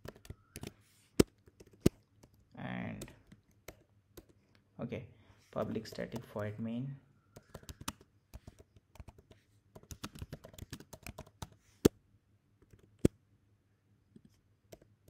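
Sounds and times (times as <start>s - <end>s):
typing on computer keyboard: 0.0s - 4.4s, 7.3s - 11.6s.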